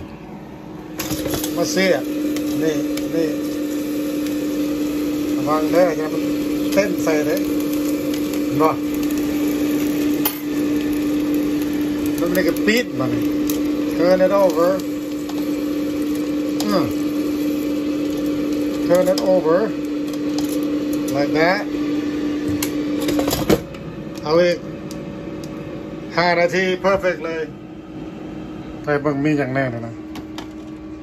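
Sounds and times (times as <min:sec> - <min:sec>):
appliance fan humming: 0:00.0 - 0:31.0.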